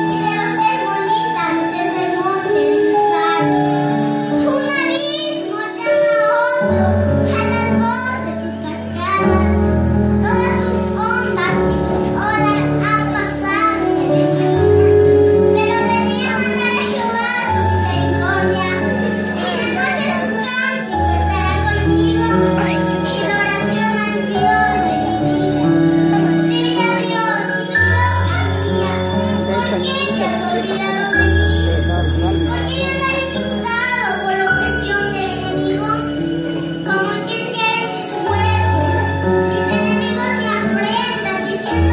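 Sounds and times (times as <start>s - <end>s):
electronic keyboard accompaniment: 0.0s - 41.9s
girl singing into microphone: 0.0s - 41.9s.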